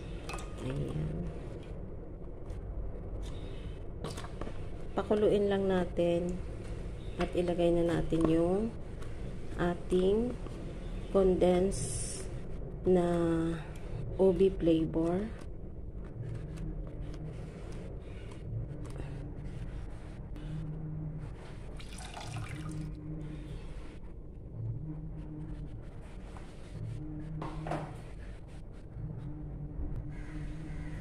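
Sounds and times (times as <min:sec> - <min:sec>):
low hum: 0:00.0 - 0:31.0
liquid pouring: 0:21.7 - 0:22.9.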